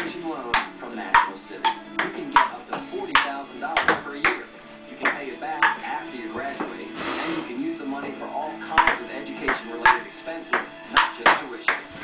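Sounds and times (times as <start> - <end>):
table tennis ball clicking: 5.0 - 5.8.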